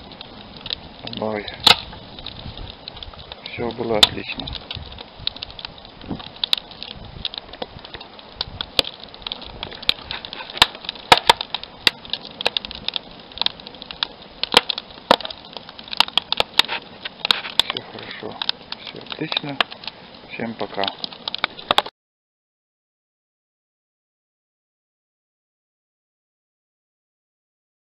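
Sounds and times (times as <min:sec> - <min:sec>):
wood fire crackling: 0:00.0 - 0:21.9.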